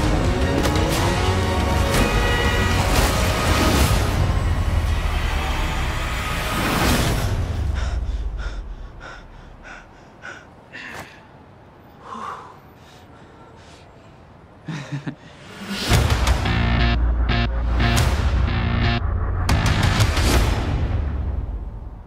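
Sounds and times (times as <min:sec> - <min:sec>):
trailer score: 0:00.0 - 0:10.1, 0:15.4 - 0:22.0
gasp: 0:12.0 - 0:13.8
short soft breaths: 0:12.0 - 0:14.4
action sound effects: 0:15.8 - 0:21.9.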